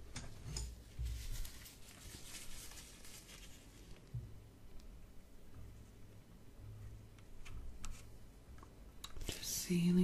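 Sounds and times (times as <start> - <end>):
close-up rustling and scratching: 0.1 - 4.1, 7.4 - 8.2.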